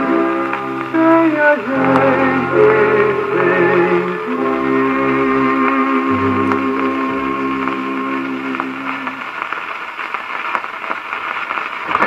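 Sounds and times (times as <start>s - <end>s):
record surface hiss: 0.0s - 12.0s.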